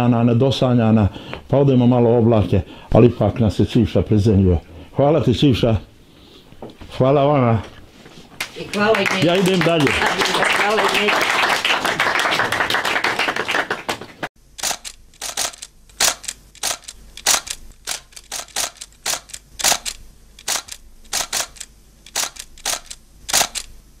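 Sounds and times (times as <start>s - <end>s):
small audience applauding: 8.4s - 14.3s
sharp irregular clicks: 14.6s - 23.7s.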